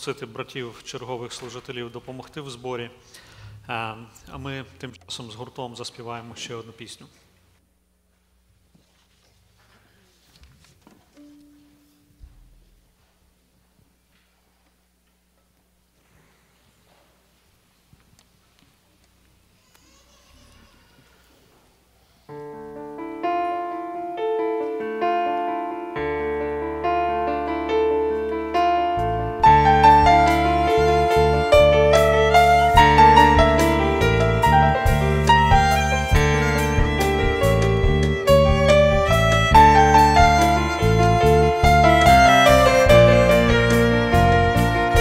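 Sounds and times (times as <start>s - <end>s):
electric piano chords: 22.3s - 45.0s
violin melody: 23.1s - 45.0s
worship band playing slow song: 27.8s - 45.0s
deep bass note: 29.0s - 45.0s
drum strikes: 29.4s - 45.0s.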